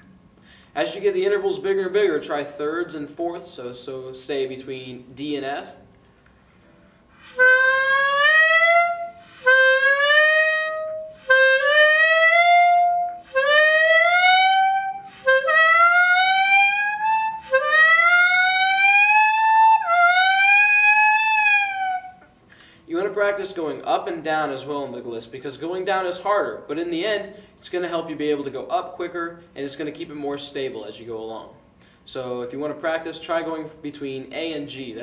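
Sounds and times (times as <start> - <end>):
clarinet upward glissandos: 7.2 - 22.4.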